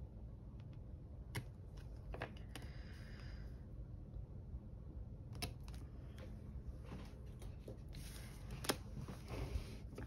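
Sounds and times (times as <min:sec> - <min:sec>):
paper stickers handled: 0:05.4 - 0:10.0.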